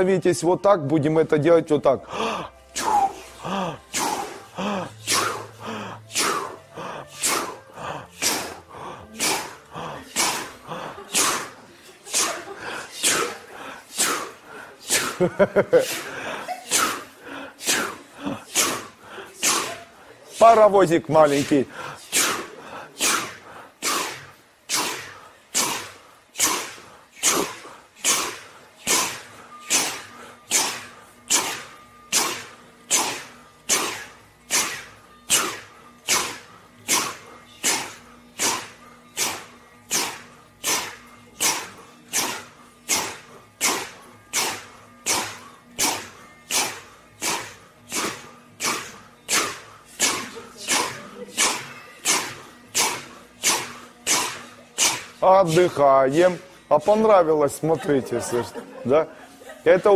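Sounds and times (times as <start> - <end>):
people puffing breathy chu sounds: 2.0 - 20.6, 21.2 - 55.8.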